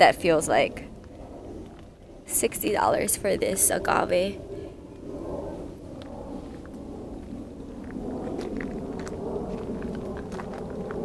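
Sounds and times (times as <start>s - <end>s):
low outdoor rumble: 0.0s - 11.0s
footsteps on gravel: 6.4s - 11.0s.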